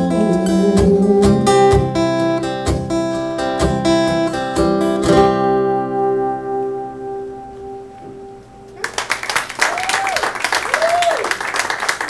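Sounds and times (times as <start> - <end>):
acoustic guitar chord ringing: 0.0 - 8.8
audience applause: 8.8 - 12.0
cheering whoops: 9.6 - 11.7.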